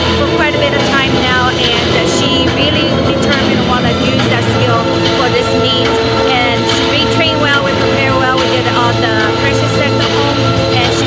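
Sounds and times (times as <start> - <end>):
loud background music: 0.0 - 11.0
steady low hum: 0.0 - 11.0
woman speaking: 0.0 - 11.0.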